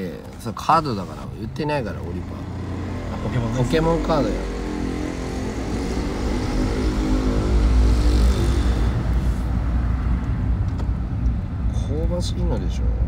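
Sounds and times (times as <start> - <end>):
car engine drone: 0.0 - 13.0
road rumble: 0.0 - 13.0.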